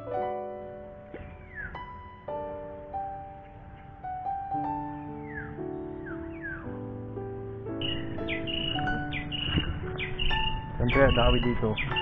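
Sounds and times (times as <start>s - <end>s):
slow keyboard music: 0.0s - 12.0s
birds chirping: 1.0s - 12.0s.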